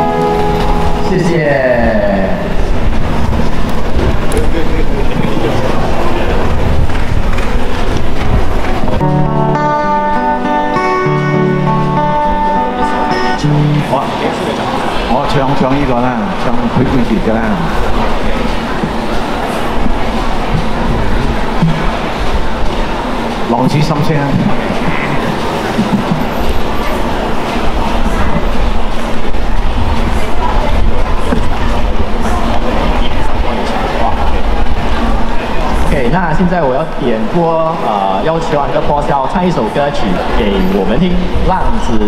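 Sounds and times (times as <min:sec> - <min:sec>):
low rumble with hiss: 0:00.0 - 0:09.6
bass line: 0:00.0 - 0:14.2
amplified acoustic guitar: 0:00.0 - 0:35.8
faint voices: 0:00.0 - 0:42.0.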